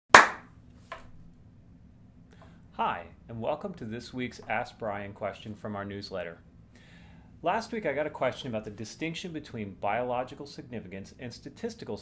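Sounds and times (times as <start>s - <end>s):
sharp hand clap: 0.1s - 0.5s.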